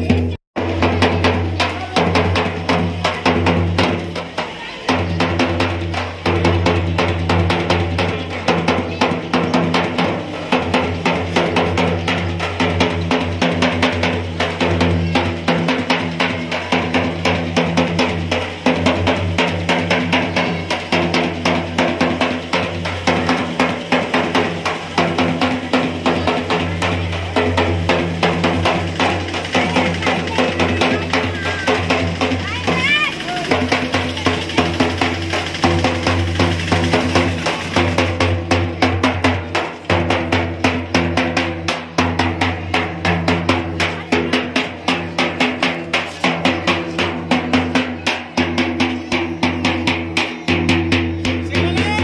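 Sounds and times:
drum beaten in fast rhythm: 0.0 - 52.0.

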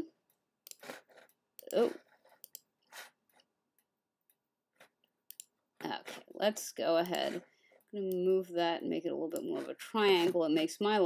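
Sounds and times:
computer mouse clicks: 0.6 - 3.0, 5.3 - 5.5.

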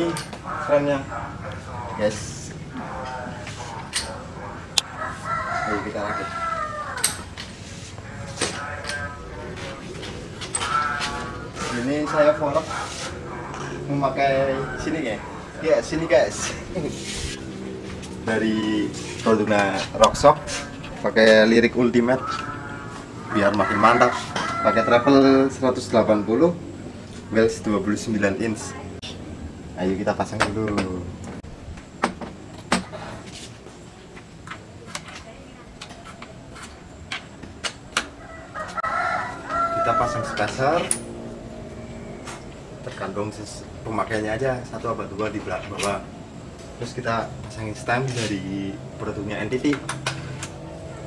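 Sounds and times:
high-pitched animal call: 0.1 - 17.4, 18.4 - 25.6.

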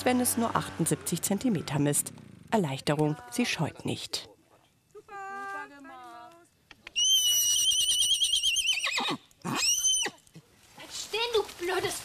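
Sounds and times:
pony whinnying: 6.9 - 10.2.

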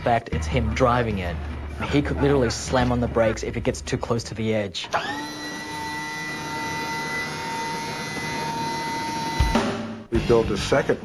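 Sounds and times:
mechanical whine: 4.9 - 9.9.

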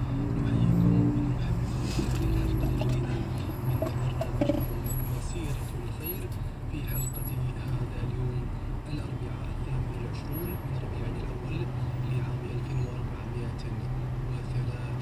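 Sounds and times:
car engine and road noise: 0.0 - 15.0.

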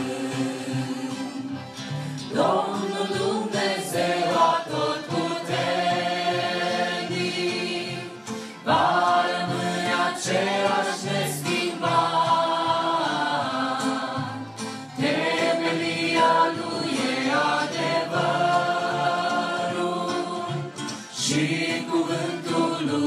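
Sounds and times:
group singing a hymn: 0.0 - 23.0.

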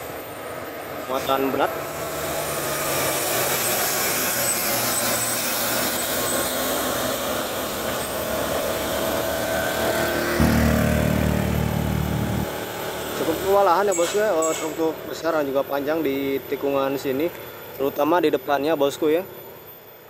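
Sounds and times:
motor scooter passing: 0.0 - 13.6
truck diesel engine rumble: 0.9 - 13.3.

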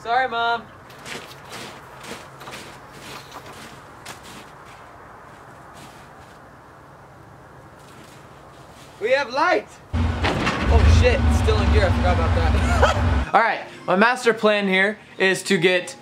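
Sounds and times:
footsteps on snow: 0.9 - 6.5.

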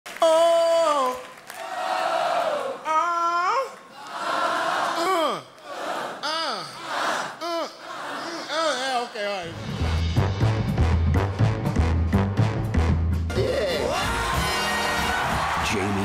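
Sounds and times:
audience cheering and applauding: 0.1 - 2.9, 13.7 - 16.0
man's wordless vocal cries: 5.0 - 5.6, 7.4 - 9.5.

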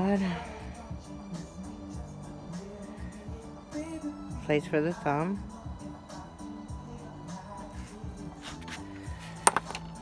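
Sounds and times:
background music with held notes: 0.0 - 10.0
rock set down on rocks: 9.4 - 10.0.

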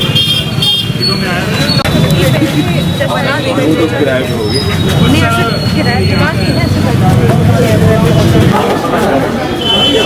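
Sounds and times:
people talking outdoors: 0.0 - 10.0
traffic noise: 0.0 - 10.0.

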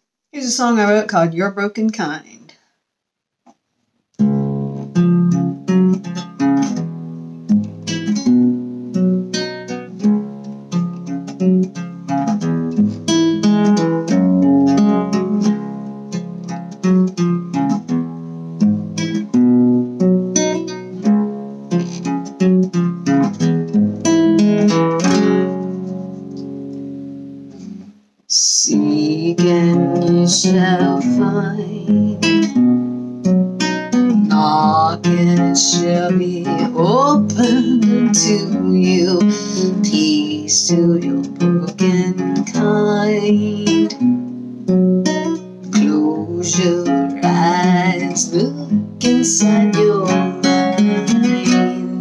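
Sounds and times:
classical guitar playing: 4.2 - 52.0.

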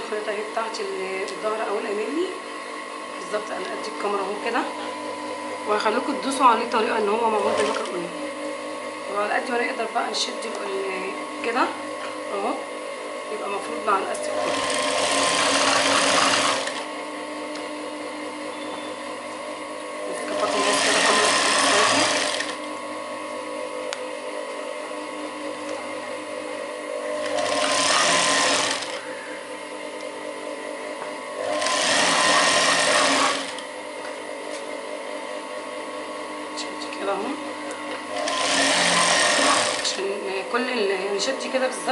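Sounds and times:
steady machine hum: 0.0 - 41.9
sewing machine stitching: 14.4 - 16.8, 20.2 - 22.6, 27.2 - 29.0, 31.4 - 33.6, 38.1 - 40.0.

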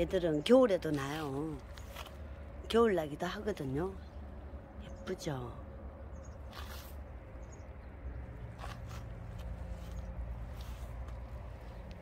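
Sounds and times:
soft footstep scuffs: 6.4 - 7.1, 8.4 - 12.0.

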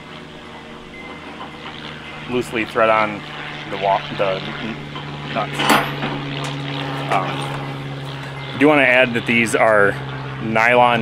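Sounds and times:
low motor drone: 0.0 - 11.0.

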